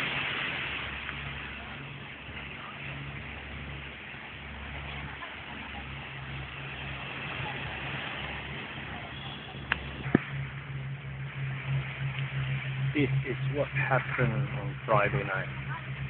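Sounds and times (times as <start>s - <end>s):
steady hiss: 0.0s - 16.0s.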